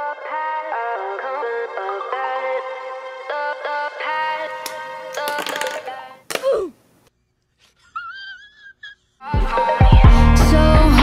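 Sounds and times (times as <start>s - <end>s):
high-pitched whimpering cry: 6.3s - 6.8s, 7.6s - 9.4s.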